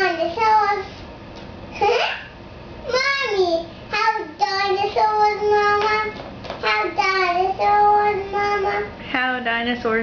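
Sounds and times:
child singing: 0:00.0 - 0:00.9, 0:02.9 - 0:09.0.

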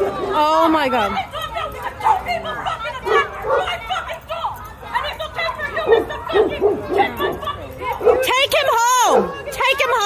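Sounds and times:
people talking: 0:00.0 - 0:10.0
dog barking: 0:03.0 - 0:03.8, 0:05.8 - 0:08.4.

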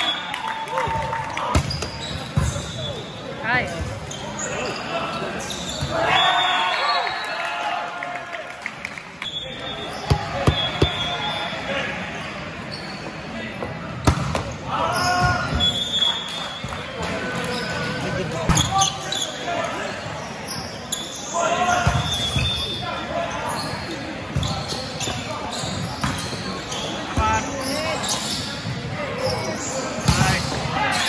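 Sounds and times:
murmur of voices: 0:00.9 - 0:06.2, 0:07.7 - 0:31.0
sneaker squeak on court floor: 0:01.5 - 0:03.1, 0:03.7 - 0:06.0, 0:09.3 - 0:11.5, 0:12.7 - 0:13.3, 0:14.0 - 0:16.6, 0:17.5 - 0:19.4, 0:20.0 - 0:31.0
volleyball ball contacts: 0:10.0 - 0:11.2, 0:14.0 - 0:14.6.

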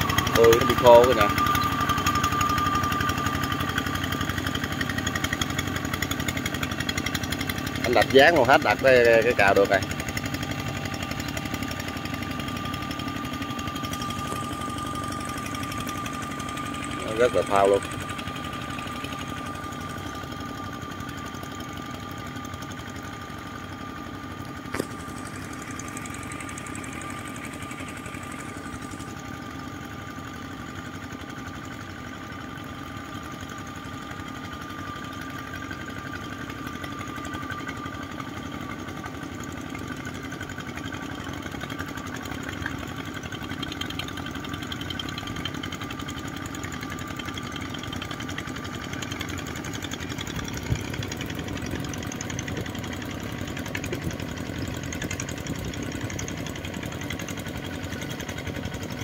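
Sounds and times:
small diesel engines running: 0:00.0 - 0:59.0.

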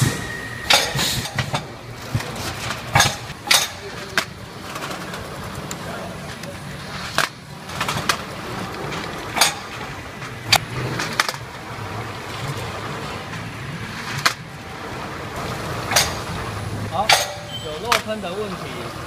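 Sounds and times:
sharp machine clacks: 0:00.0 - 0:01.7, 0:15.9 - 0:16.4, 0:17.0 - 0:18.2
machine humming: 0:00.0 - 0:13.9.

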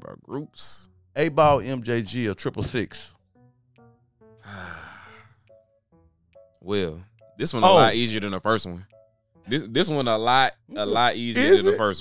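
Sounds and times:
quiet background music: 0:00.0 - 0:12.0
man sighing: 0:04.4 - 0:05.3.

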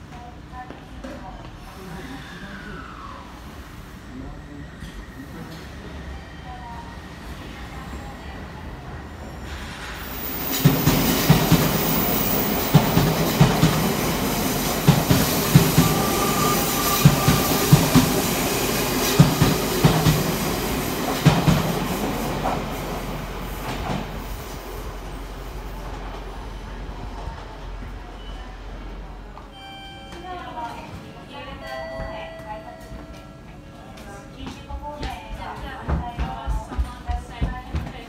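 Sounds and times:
train running past: 0:01.6 - 0:29.6.

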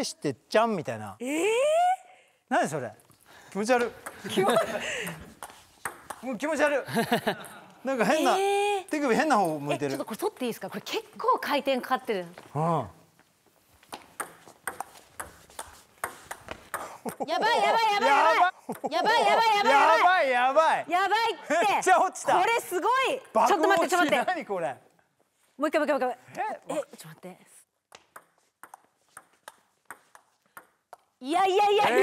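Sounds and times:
table tennis ball clicking: 0:14.1 - 0:17.2, 0:27.9 - 0:31.1.

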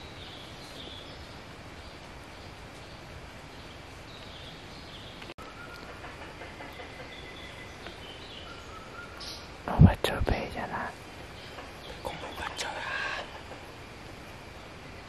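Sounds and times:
jungle background: 0:00.0 - 0:15.0
high whistled bird calls: 0:06.8 - 0:09.5.

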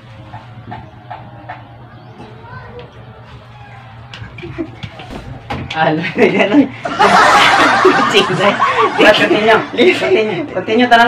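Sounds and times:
young men laughing: 0:04.1 - 0:10.8.

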